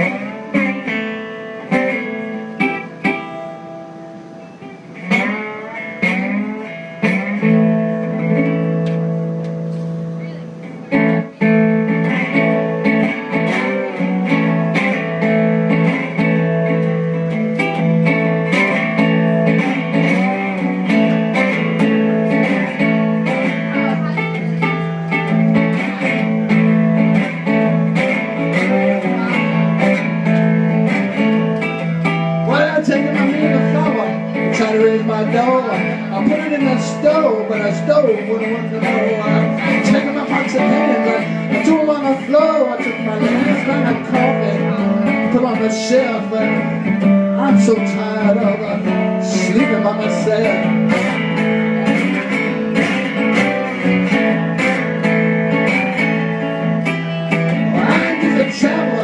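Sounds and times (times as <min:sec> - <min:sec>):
blues guitar playing: 0:00.0 - 0:59.0.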